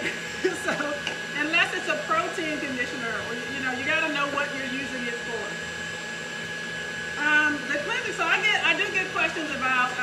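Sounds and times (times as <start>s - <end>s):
woman talking: 0.0s - 5.6s, 7.2s - 10.0s.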